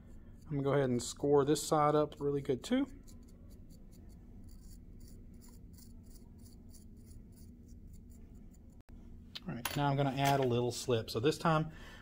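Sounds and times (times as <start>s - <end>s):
needle tool scratching clay: 2.8s - 8.8s.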